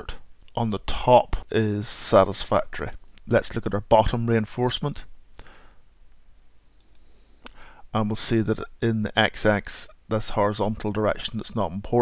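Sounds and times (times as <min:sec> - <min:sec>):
computer mouse click: 0:06.8 - 0:07.6.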